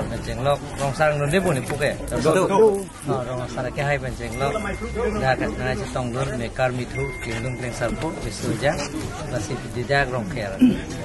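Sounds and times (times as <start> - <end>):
man speaking: 0.0 - 10.9.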